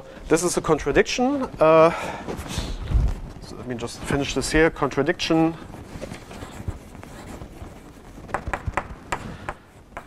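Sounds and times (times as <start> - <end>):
chalk tapping on blackboard: 6.4 - 10.0.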